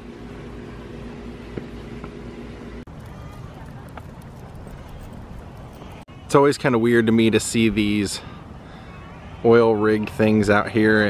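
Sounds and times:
low mechanical hum: 0.0 - 6.3.

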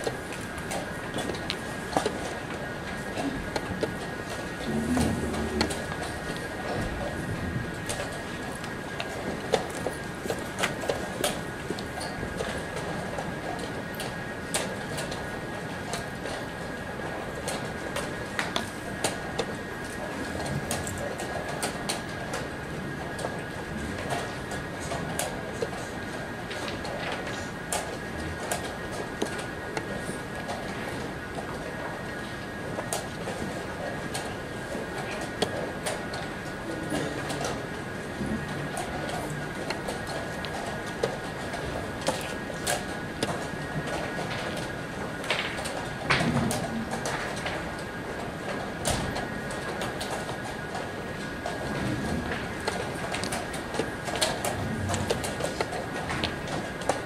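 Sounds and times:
background murmur: 0.0 - 57.0
faint constant whine: 0.0 - 57.0.

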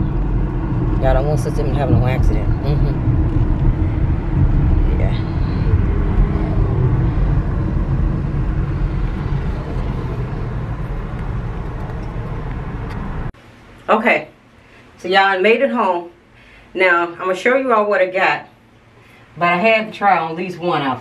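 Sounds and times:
car cabin road and engine noise: 0.0 - 13.4.

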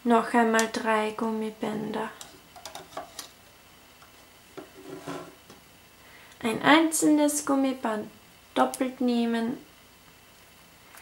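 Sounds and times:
soft handling noise: 4.0 - 5.6.

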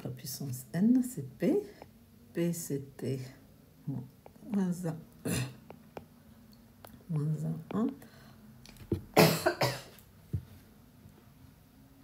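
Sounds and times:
person coughing: 5.2 - 5.6, 9.2 - 10.0.

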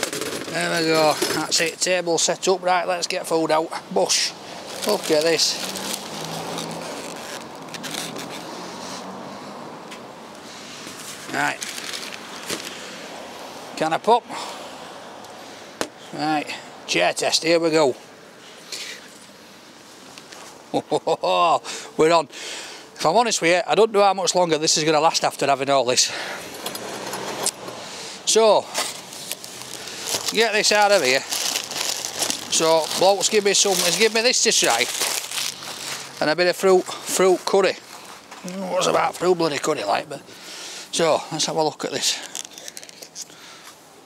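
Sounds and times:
street traffic: 0.0 - 44.0
car passing: 4.1 - 17.1, 26.1 - 34.2
paper wrapping crinkling: 4.7 - 8.5, 11.0 - 12.8, 28.8 - 36.5, 42.2 - 43.3.

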